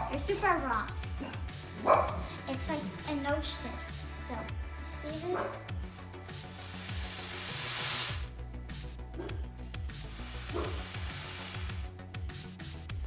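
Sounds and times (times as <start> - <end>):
ocean drum rushing hiss: 6.3 - 8.4, 9.9 - 11.9.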